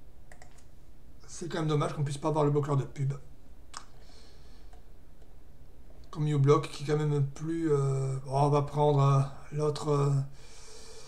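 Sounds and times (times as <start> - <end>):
low steady hum: 0.0 - 11.0
computer mouse click: 0.3 - 0.7.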